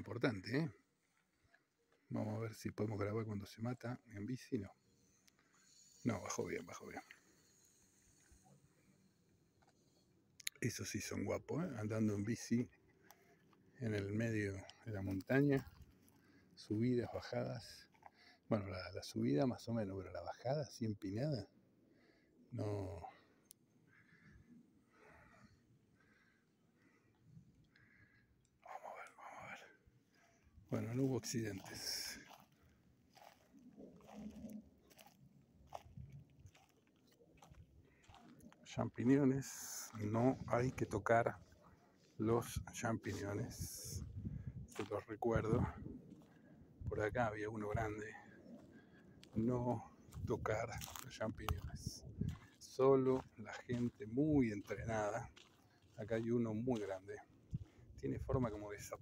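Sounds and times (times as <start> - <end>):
footsteps crunching on dirt trail: 30.7 - 41.6, 43.2 - 47.0, 47.8 - 58.9.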